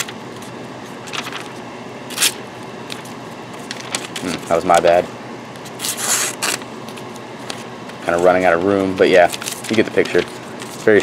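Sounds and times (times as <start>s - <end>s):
paper rustling: 0.0s - 4.8s, 5.7s - 11.0s
knife slicing paper: 5.8s - 6.6s.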